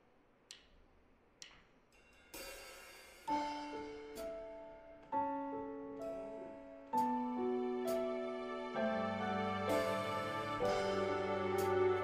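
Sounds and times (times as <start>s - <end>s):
light cymbal ticks: 0.4s - 2.4s
piano chord: 3.3s - 12.0s.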